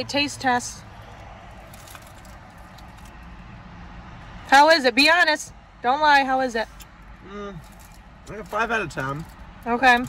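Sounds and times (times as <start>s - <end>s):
car rumble: 0.0s - 10.0s
paper wrapper crackling: 1.6s - 3.2s.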